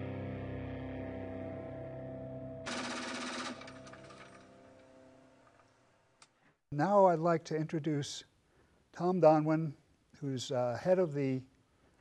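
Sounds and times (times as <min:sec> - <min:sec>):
background music: 0:00.0 - 0:05.6
machine gun automatic fire: 0:02.7 - 0:04.5.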